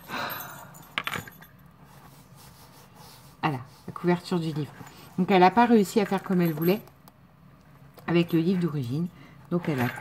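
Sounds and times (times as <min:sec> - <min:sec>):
jingle bell and trinkets jingling: 0:00.0 - 0:01.6, 0:04.6 - 0:06.9.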